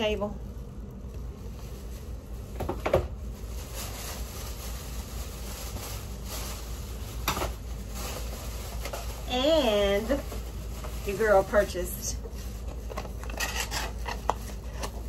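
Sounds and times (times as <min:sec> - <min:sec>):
low steady hum: 0:00.0 - 0:15.0
plastic bag rustling: 0:00.0 - 0:15.0.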